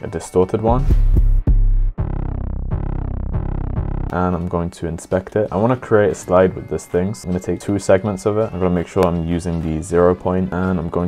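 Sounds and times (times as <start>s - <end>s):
distorted bass hits sliding down: 0.8s - 4.1s.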